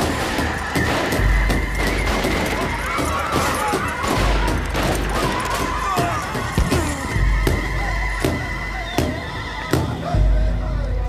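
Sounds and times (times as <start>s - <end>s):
dramatic film score: 0.0s - 11.0s.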